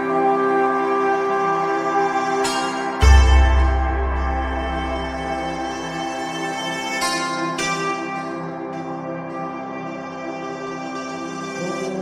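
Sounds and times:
ambient meditation music: 0:00.0 - 0:12.0.

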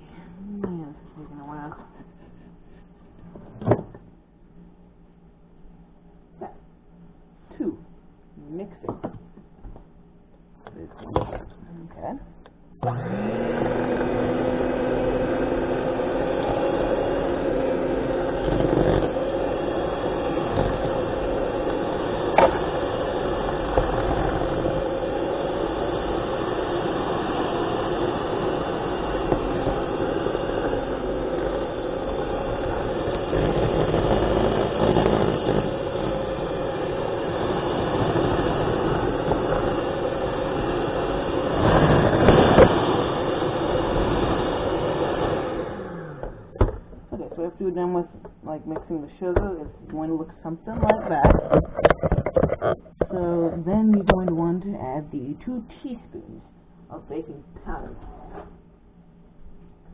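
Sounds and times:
electric mixer motor whining: 0:12.8 - 0:47.4.

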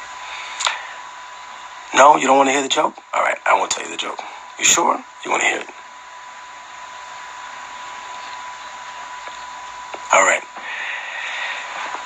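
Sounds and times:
background hiss: 0:00.0 - 0:12.0
high-pitched whine: 0:00.0 - 0:12.0.

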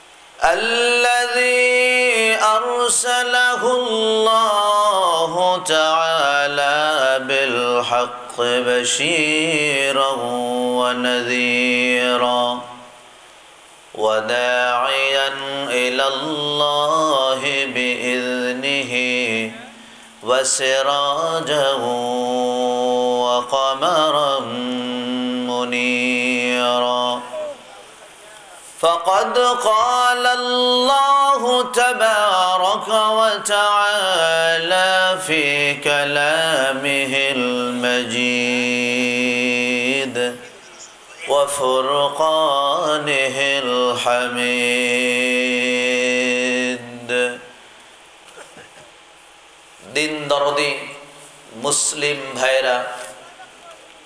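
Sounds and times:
man chanting melodically: 0:00.4 - 0:13.0, 0:13.9 - 0:47.6, 0:49.8 - 0:54.0.

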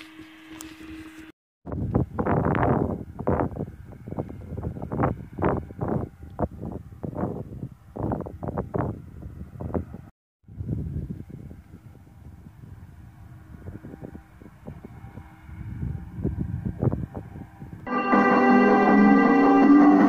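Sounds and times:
wind buffeting microphone: 0:01.6 - 0:17.9.

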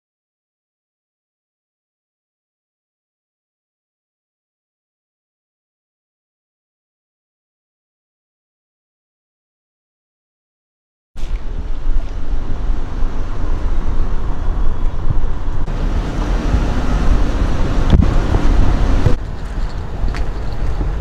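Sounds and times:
car road noise on wet road: 0:11.2 - 0:21.0
wind buffeting microphone: 0:11.2 - 0:21.0.

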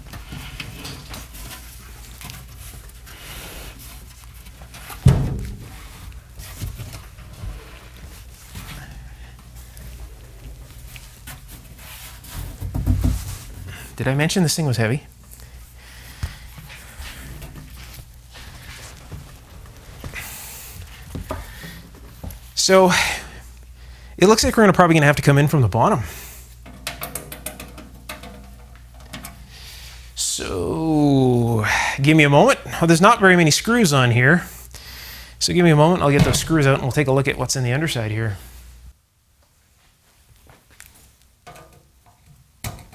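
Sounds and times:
steady low hum: 0:00.0 - 0:33.0
heavy steel cabinet knocking and rubbing: 0:04.9 - 0:07.7, 0:12.2 - 0:14.0.

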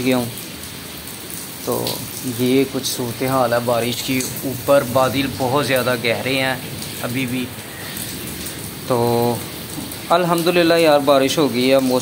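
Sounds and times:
rain on wet concrete: 0:00.0 - 0:12.0.

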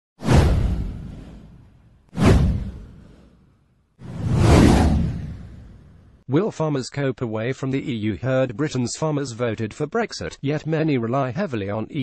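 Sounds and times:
whoosh sound effects: 0:00.2 - 0:03.4, 0:04.0 - 0:06.0.

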